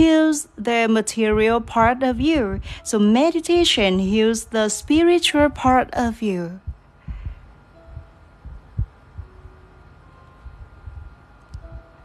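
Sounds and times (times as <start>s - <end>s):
faint steady hum: 0.0s - 12.0s
low soft thumps: 6.6s - 9.6s, 10.4s - 12.0s.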